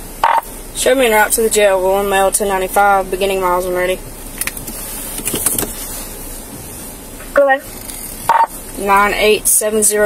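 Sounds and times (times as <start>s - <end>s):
car engine and cabin noise: 0.0s - 10.0s
clicks and rustles: 4.4s - 5.9s.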